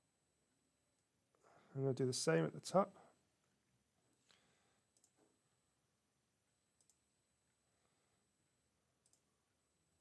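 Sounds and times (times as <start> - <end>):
faint computer mouse clicks: 4.2 - 5.3, 6.8 - 7.0, 9.0 - 9.3.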